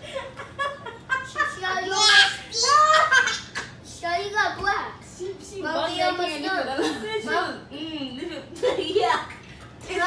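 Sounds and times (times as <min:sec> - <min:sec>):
child talking: 0:01.5 - 0:06.5
woman talking: 0:05.2 - 0:10.0.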